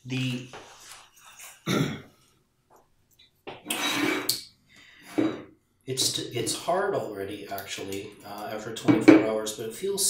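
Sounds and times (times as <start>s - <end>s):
man coughing: 1.6s - 2.1s.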